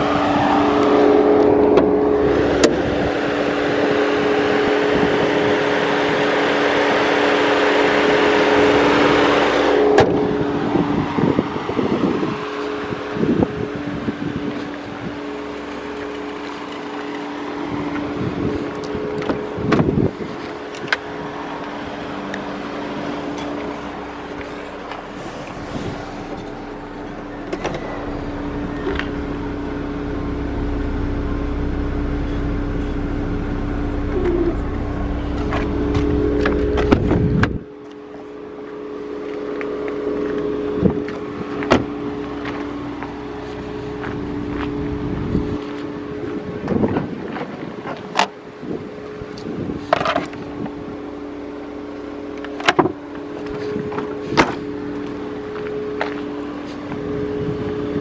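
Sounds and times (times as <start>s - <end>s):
steady mechanical hum: 0.0s - 58.0s
low rumble: 23.4s - 37.7s, 40.2s - 46.6s.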